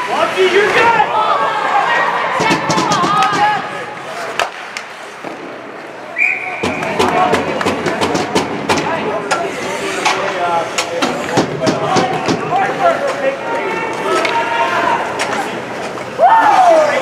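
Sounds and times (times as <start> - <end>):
hockey sticks and skates clacking: 0.0 - 1.0, 2.3 - 17.0
short high whistle: 6.1 - 6.8.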